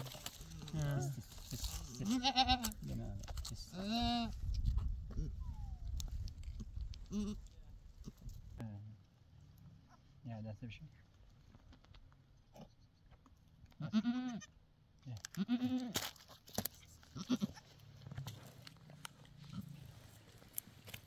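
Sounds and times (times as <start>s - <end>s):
goat bleating: 0.3s - 2.9s, 3.7s - 4.4s, 7.1s - 7.5s, 13.8s - 14.6s, 15.3s - 16.0s, 17.1s - 17.7s.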